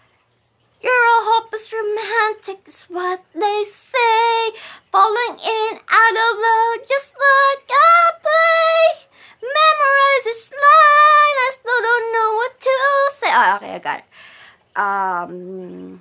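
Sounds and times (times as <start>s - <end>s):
person singing unaccompanied: 0.8s - 14.1s, 14.8s - 16.0s.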